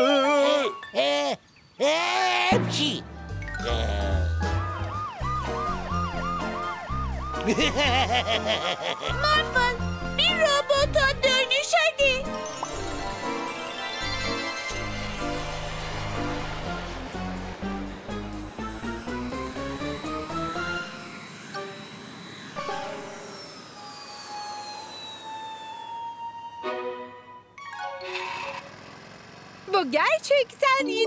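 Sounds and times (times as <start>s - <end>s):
upbeat cartoon music: 2.5s - 21.9s, 26.0s - 28.7s
long descending whistle: 18.6s - 27.4s.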